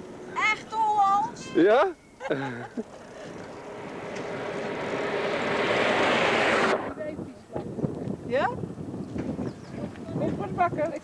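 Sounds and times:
motor vehicle passing: 0:02.5 - 0:07.9.

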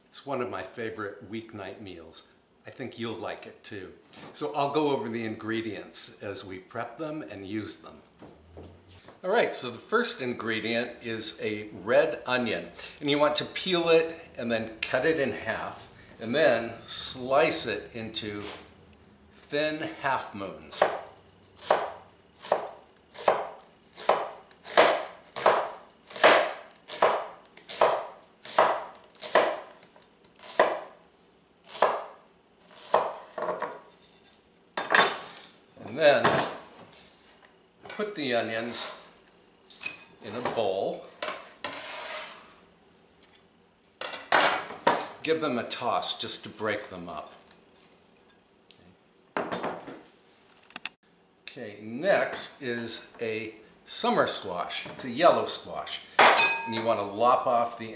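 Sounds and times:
knife slicing onion on wooden board: 0:21.6 - 0:30.9, 0:31.6 - 0:34.2
glass bowl scraping on wood: 0:41.6 - 0:42.5.

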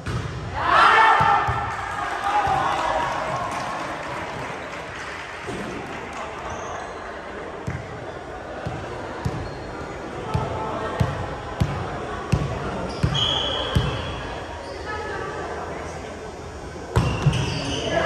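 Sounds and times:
players' voices echoing: 0:00.0 - 0:14.6.

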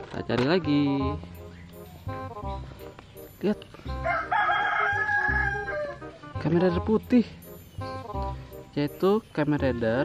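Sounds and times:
rooster crowing: 0:04.0 - 0:06.2.

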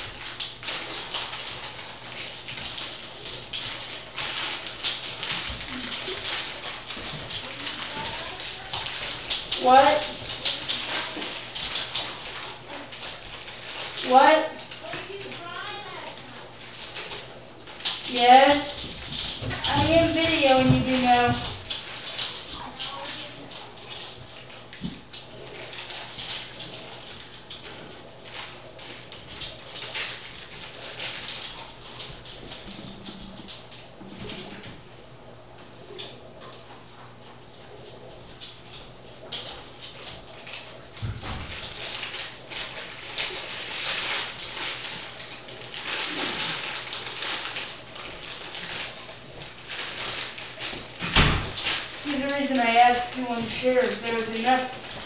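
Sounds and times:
plastic bag crinkling: 0:00.0 - 0:34.7, 0:39.2 - 0:55.0.

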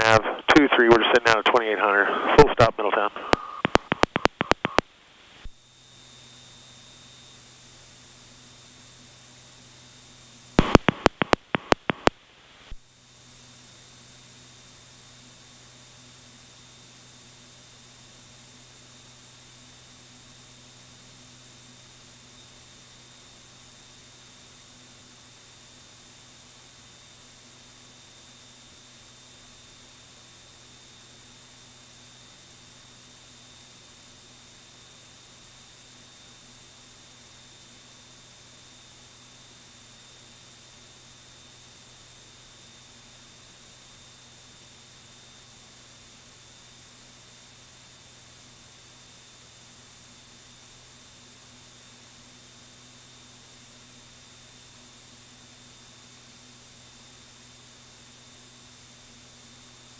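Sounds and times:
headset audio hiss: 0:00.0 - 0:05.5, 0:10.6 - 0:12.8
radio switch clicks: 0:03.2 - 0:04.8, 0:10.6 - 0:12.2.

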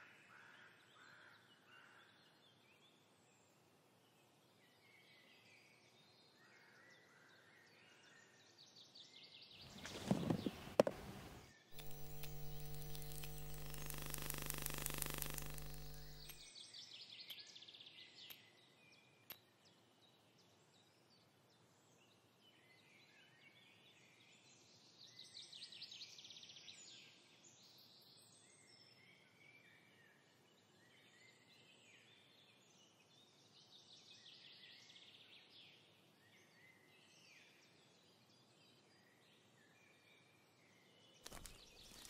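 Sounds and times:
buzzy electrical hum: 0:11.1 - 0:16.4
rustling with sharp clicks: 0:11.8 - 0:16.4, 0:41.2 - 0:42.0
faint birdsong: 0:11.8 - 0:20.9.

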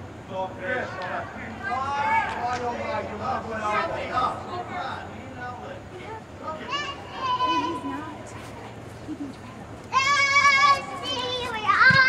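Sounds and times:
girls shouting: 0:06.6 - 0:08.0, 0:09.9 - 0:12.0.

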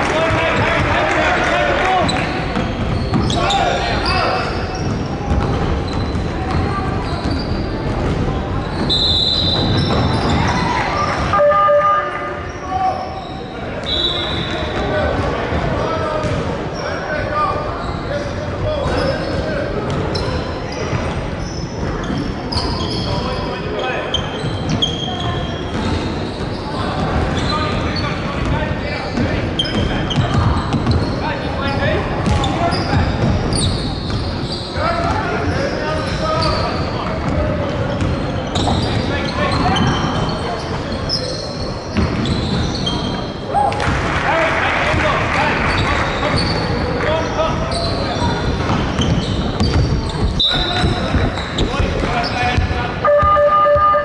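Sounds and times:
sneakers squeaking on court: 0:02.0 - 0:11.3, 0:17.7 - 0:43.5, 0:45.6 - 0:54.0
basketball bouncing: 0:04.8 - 0:07.0, 0:48.6 - 0:53.8.

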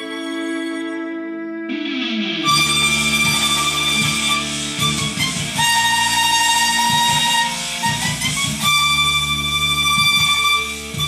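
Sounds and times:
violin slow bowed melody: 0:00.0 - 0:11.0.

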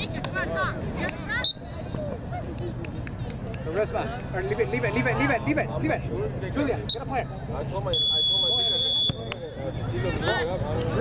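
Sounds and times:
referee's whistle: 0:07.9 - 0:09.6.

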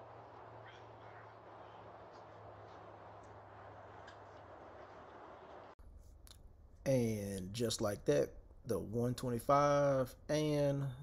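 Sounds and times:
low hum and hiss: 0:00.0 - 0:11.0.

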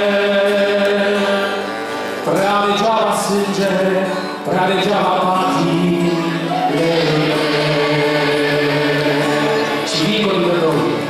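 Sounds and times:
voices singing a carol: 0:00.0 - 0:11.0.

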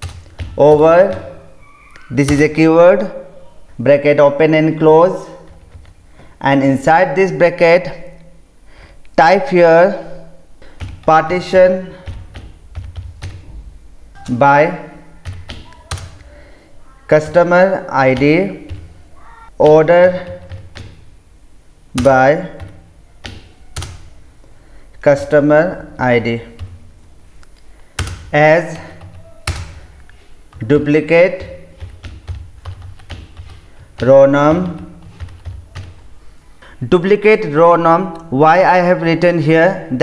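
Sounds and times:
keyboard keystrokes: 0:12.0 - 0:13.4, 0:22.0 - 0:24.1, 0:28.9 - 0:30.6, 0:31.4 - 0:36.0.

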